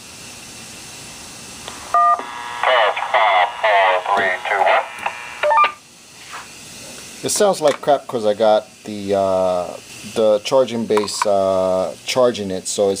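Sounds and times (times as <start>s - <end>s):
radio hiss: 1.7s - 5.8s
tinny recorded voice over radio: 2.6s - 5.1s.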